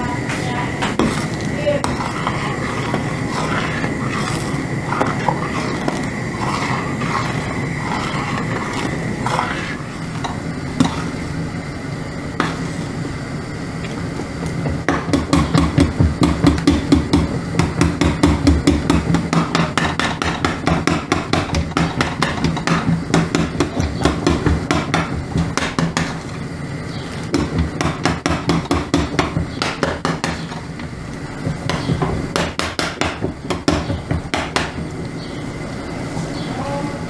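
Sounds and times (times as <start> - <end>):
spoon scraping a steel pot: 0.8 - 11.2.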